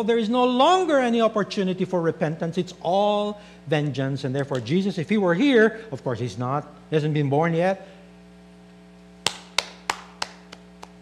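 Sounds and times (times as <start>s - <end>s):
steady electrical hum: 0.0s - 11.0s
man clapping hands: 9.2s - 11.0s.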